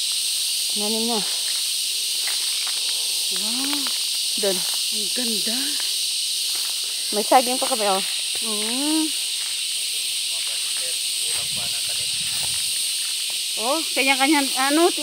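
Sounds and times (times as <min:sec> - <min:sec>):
high-pitched insect drone: 0:00.0 - 0:15.0
voices: 0:00.7 - 0:01.4, 0:02.8 - 0:05.9, 0:07.0 - 0:15.0.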